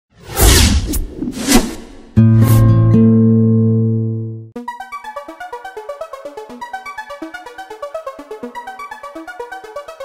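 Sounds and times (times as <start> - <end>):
rushing whooshes: 0.2 - 2.2
held low chord: 2.2 - 4.6.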